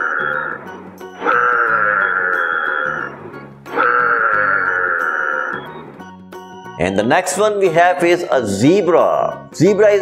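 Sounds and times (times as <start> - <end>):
animal long drawn-out cry: 0.0 - 5.8
background music: 0.0 - 10.0.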